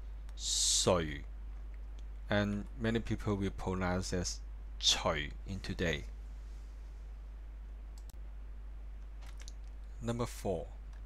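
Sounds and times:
steady low hum: 0.0s - 11.0s
computer clicks: 8.0s - 8.2s, 9.0s - 9.9s.

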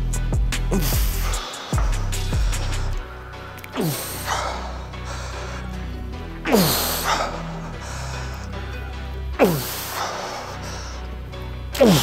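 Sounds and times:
background music: 0.0s - 12.0s
man groaning with strained exhales: 0.7s - 1.7s, 3.6s - 4.9s, 6.4s - 10.6s, 11.7s - 12.0s.

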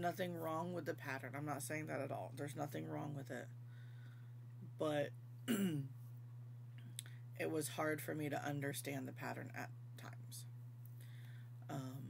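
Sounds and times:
woman clearing her throat: 5.5s - 5.9s.

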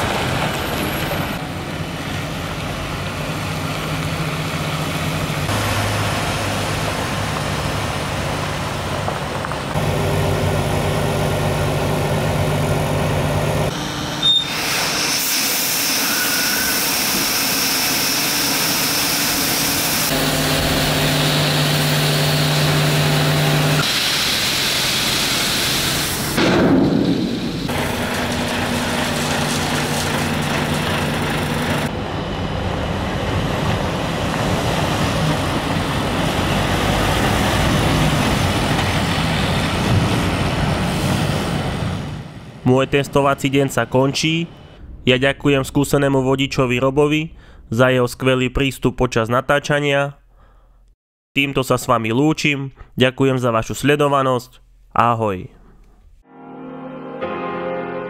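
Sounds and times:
gravel sliding off tipper: 27.2s - 31.9s.

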